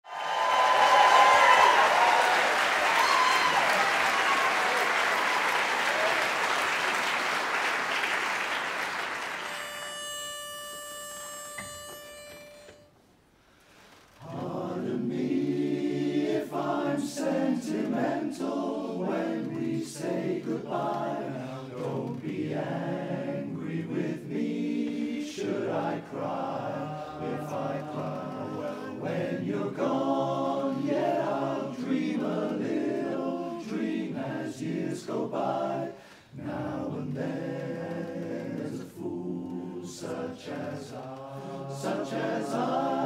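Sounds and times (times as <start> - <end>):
audience applause: 0.0 - 9.8
steady held note: 9.4 - 13.0
male chorus singing a cappella: 14.2 - 43.0.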